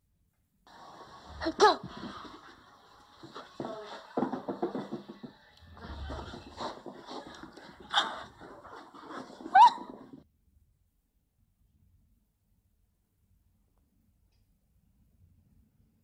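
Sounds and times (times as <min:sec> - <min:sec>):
puppy crying and yelping: 0:07.8 - 0:10.2.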